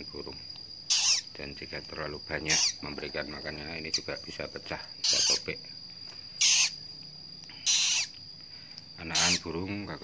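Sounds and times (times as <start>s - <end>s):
chick raspy hissing begging calls: 0.9s - 1.3s, 2.4s - 2.8s, 5.0s - 5.5s, 6.4s - 6.8s, 7.5s - 8.2s, 9.0s - 9.6s.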